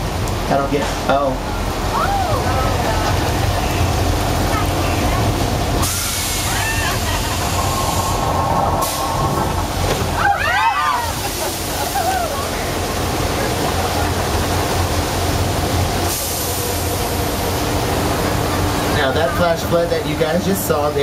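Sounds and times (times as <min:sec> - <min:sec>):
water rushing down stone channel: 0:00.0 - 0:21.0.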